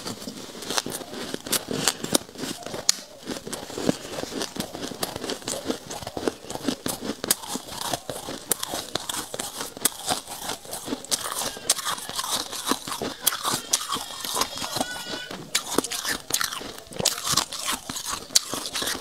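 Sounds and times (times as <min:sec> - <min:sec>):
chewing and crunching frost: 0:00.0 - 0:19.0.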